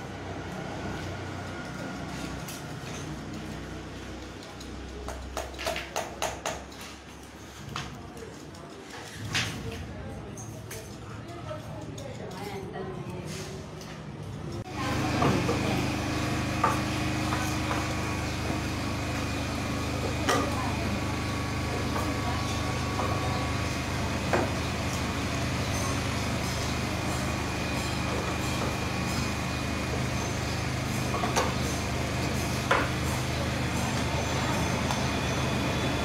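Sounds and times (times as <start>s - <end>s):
steady machine hum: 14.6s - 36.0s.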